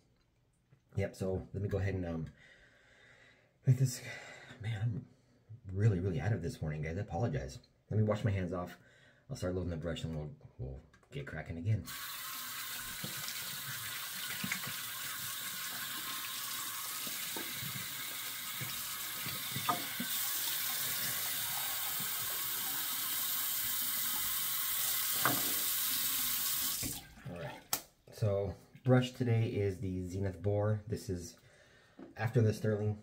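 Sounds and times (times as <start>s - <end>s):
sink tap running: 11.9s - 27.2s
hands rinsing under water: 11.9s - 27.7s.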